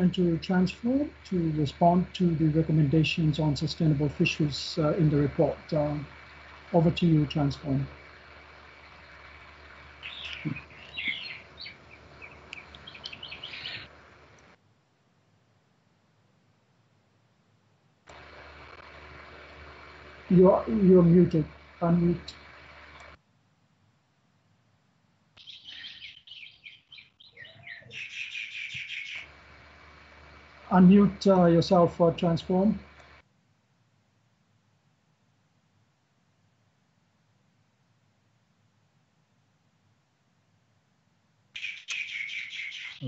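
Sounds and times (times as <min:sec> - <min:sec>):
birds chirping: 0:00.0 - 0:14.6, 0:19.2 - 0:23.2, 0:25.4 - 0:33.2, 0:41.6 - 0:43.0.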